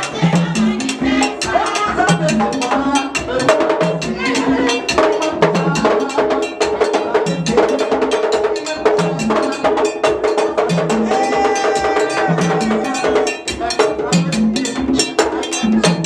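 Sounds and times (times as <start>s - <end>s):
drums: 0.0s - 16.0s.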